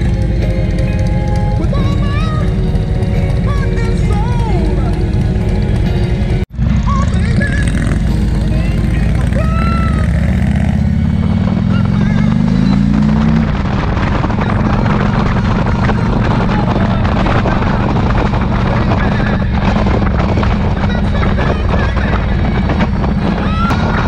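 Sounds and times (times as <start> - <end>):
motorcycle engine running: 0.0 - 24.0
wind rushing over microphone: 0.0 - 24.0.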